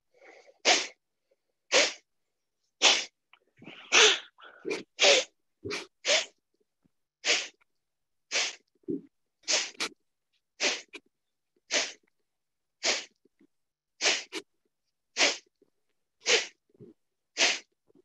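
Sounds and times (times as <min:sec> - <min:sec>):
forceful nasal exhalations: 0:00.2 - 0:01.0, 0:01.7 - 0:02.0, 0:02.8 - 0:06.4, 0:07.2 - 0:07.6, 0:08.3 - 0:10.0, 0:10.6 - 0:11.0, 0:11.7 - 0:12.0, 0:12.8 - 0:13.2, 0:14.0 - 0:14.5, 0:15.2 - 0:15.5, 0:16.2 - 0:17.8.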